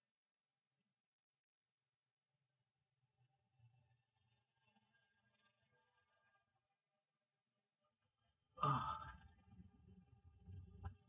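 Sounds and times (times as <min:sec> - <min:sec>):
man sighing: 0:08.6 - 0:09.2.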